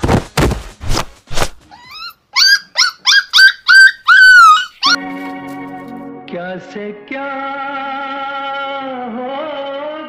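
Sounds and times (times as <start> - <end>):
dog yelping: 1.7 - 5.0
held music chord: 5.0 - 7.4.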